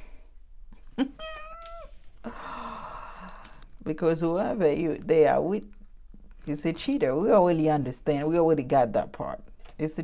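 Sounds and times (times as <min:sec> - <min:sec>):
cat meowing: 0:01.2 - 0:02.0.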